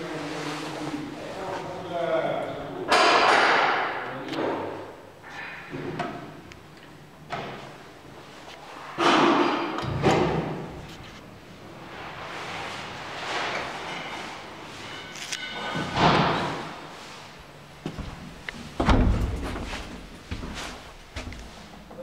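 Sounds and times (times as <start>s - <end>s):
door slamming shut: 15.8s - 16.7s, 18.7s - 19.8s.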